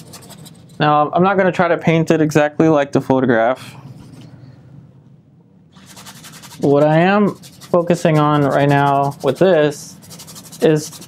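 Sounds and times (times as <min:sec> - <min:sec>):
brush scrubbing paint on canvas: 0:00.0 - 0:00.9, 0:05.8 - 0:11.0.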